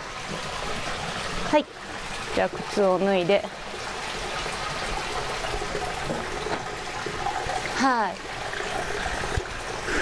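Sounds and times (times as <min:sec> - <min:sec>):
water trickling into foot bath: 0:00.0 - 0:10.0.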